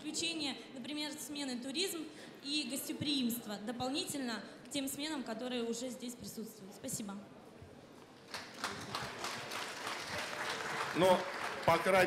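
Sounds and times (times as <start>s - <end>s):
audience applauding: 8.3s - 12.0s.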